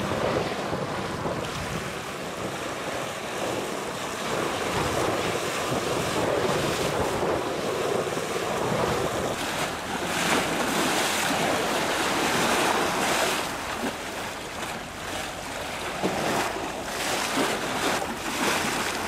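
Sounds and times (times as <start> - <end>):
waves splashing against a wall: 0.0 - 19.0
wind buffeting microphone: 0.0 - 19.0.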